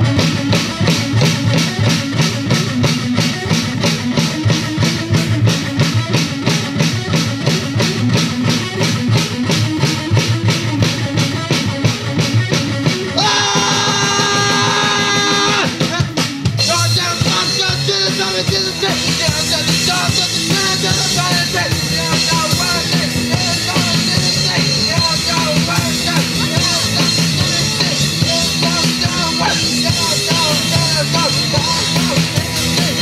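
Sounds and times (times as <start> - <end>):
driving drums: 0.0 - 33.0
electric guitar: 0.0 - 33.0
punk rock band playing: 0.0 - 33.0.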